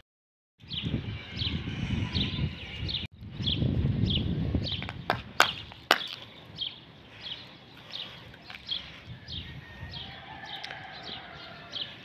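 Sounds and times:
bird chirping: 0.6 - 12.0.

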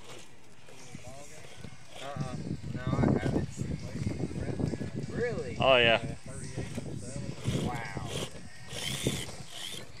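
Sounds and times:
rc car motor whining: 0.8 - 2.4, 6.6 - 10.0.

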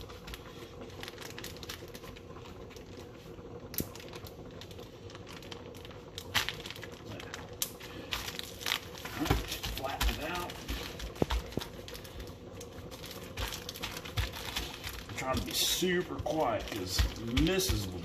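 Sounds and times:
plastic bag crinkling: 0.0 - 18.0.

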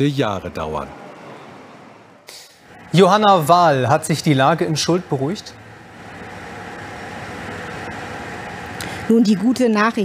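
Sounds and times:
distant heavy machinery engines: 0.0 - 10.0.

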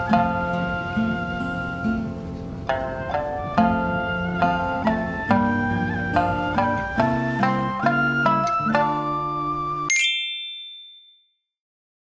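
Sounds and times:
bright bell-like ding: 9.9 - 11.2.

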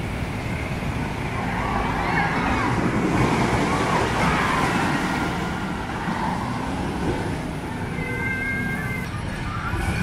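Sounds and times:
roller coaster rumbling on track: 0.0 - 10.0.

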